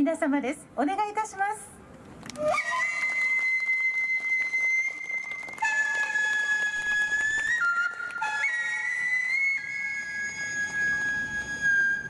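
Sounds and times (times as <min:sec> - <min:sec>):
bamboo flute long notes: 0:02.3 - 0:12.0.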